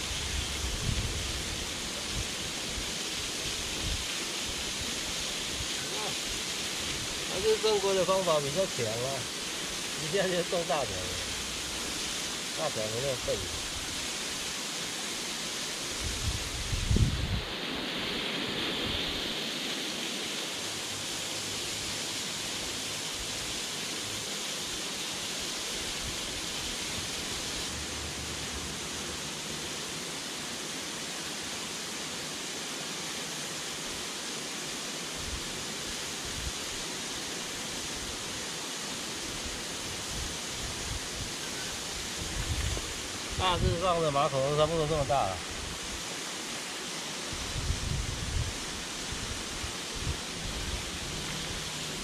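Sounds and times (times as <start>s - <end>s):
small waterfall spilling onto rocks: 0.0s - 17.3s, 19.7s - 52.0s.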